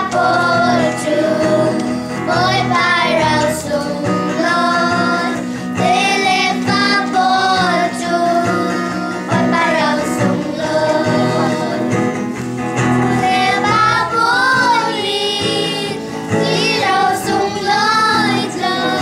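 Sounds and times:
children singing in unison: 0.0 - 12.2, 13.0 - 19.0
musical accompaniment: 0.0 - 19.0.

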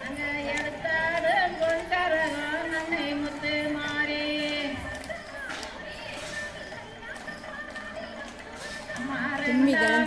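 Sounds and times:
women singing folk song: 0.0 - 10.0.

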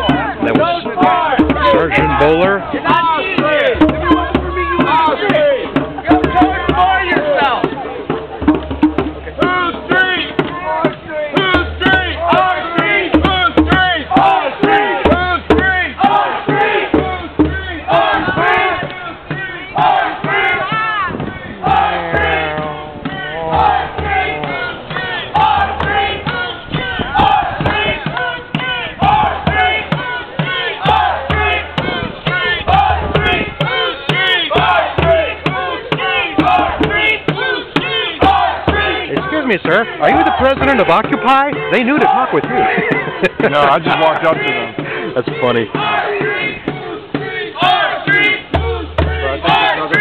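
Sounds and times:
crowd chanting and shouting: 0.0 - 50.0
low rumbling: 21.1 - 27.7.

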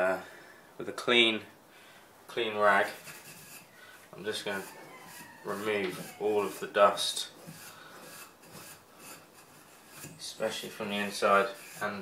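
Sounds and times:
cloth rubbing wood: 2.7 - 12.0.

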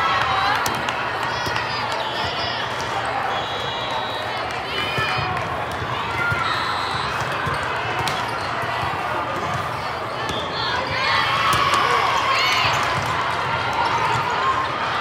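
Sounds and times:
volleyballs being hit and bounced: 0.0 - 3.1, 4.4 - 14.5
many voices in a hall: 0.0 - 15.0
sneaker squeaks on court floor: 6.1 - 8.7.

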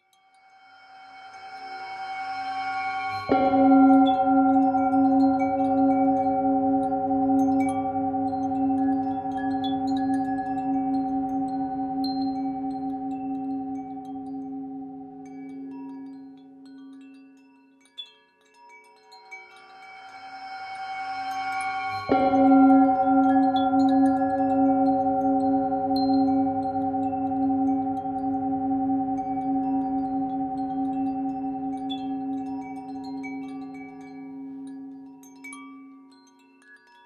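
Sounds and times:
wind chimes tinkling: 0.0 - 37.0
singing bowl ringing: 0.1 - 17.0, 19.0 - 36.3.

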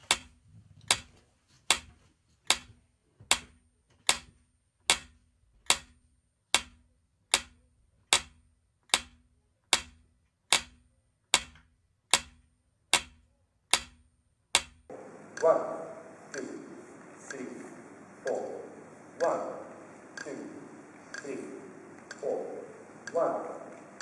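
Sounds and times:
metronome clicks: 3.3 - 15.5.

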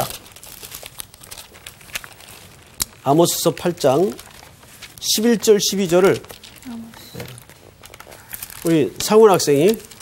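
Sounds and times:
thin pages rustling: 0.0 - 10.0.

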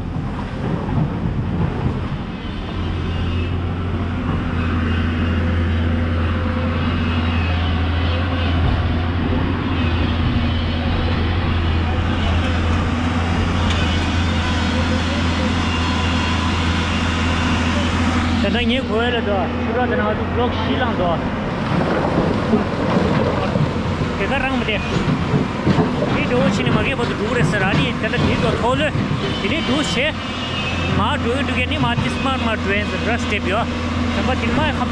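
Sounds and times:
excavator diesel engine humming: 0.0 - 34.9.

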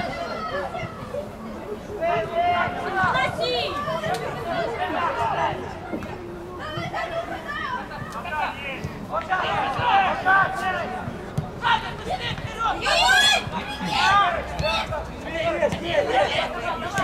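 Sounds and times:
voices shouting: 0.0 - 17.0.

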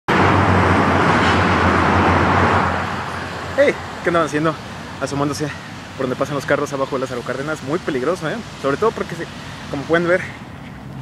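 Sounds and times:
tyre hiss on wet road: 2.7 - 10.5.

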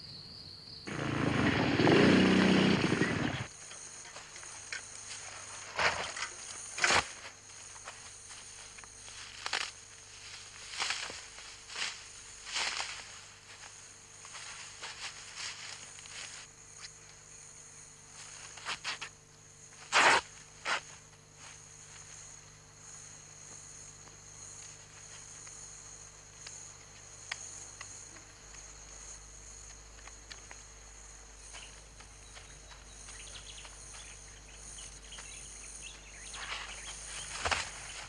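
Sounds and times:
insect chirring: 3.2 - 38.0
footsteps through dry brush: 7.0 - 16.6, 31.5 - 34.3, 35.1 - 38.0.

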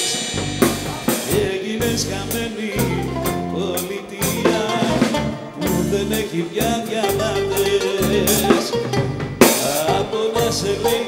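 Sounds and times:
drum kit: 0.0 - 11.0
electric bass: 0.0 - 11.0
goblet drum beat: 0.0 - 11.0
bouzouki melody: 2.7 - 11.0.

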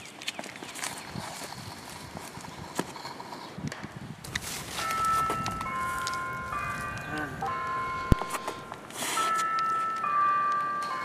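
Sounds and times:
wind gusting on microphone: 0.7 - 8.7
sustained chime-like tones: 4.8 - 11.0.

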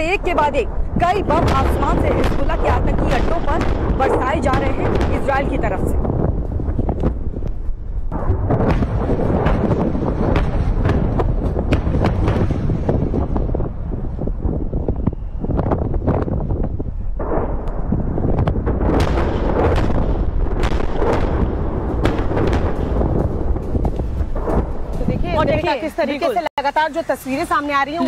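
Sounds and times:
bomb blasts booming: 0.0 - 25.8
heavy rumble: 0.0 - 25.9
sharp cracks: 0.6 - 13.6, 17.2 - 25.1.

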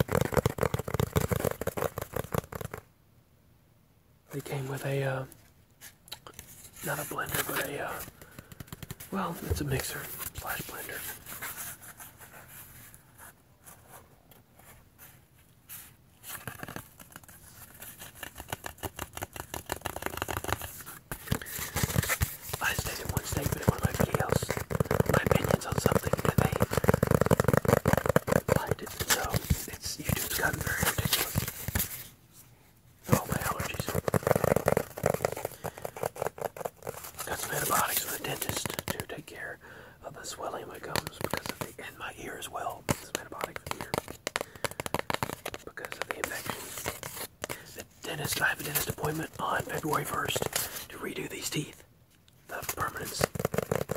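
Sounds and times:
fingers tapping on cardboard: 0.0 - 2.8, 7.3 - 9.8, 17.8 - 32.0, 33.1 - 39.1, 40.9 - 41.7, 42.8 - 47.7, 52.7 - 53.9.

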